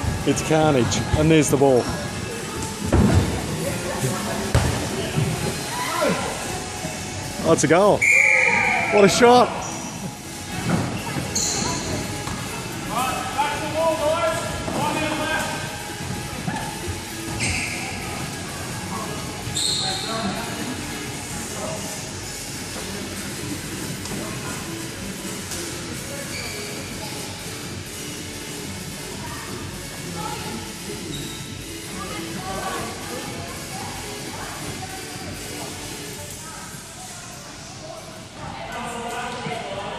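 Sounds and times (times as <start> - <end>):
short high squeaks: 11.3 - 11.9, 19.5 - 20.1, 26.3 - 26.8, 31.1 - 31.5.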